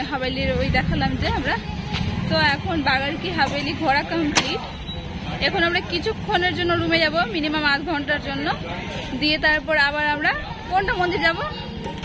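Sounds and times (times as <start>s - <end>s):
woman talking: 0.0s - 1.6s, 2.2s - 4.6s, 5.4s - 8.6s, 9.2s - 11.7s.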